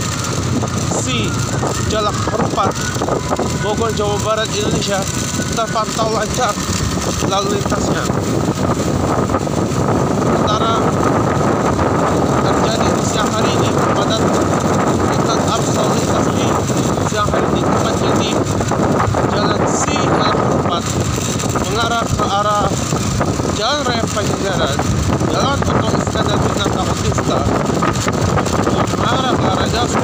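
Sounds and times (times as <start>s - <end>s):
motorcycle engine: 0.0s - 30.0s
wind rushing on microphone: 0.0s - 30.0s.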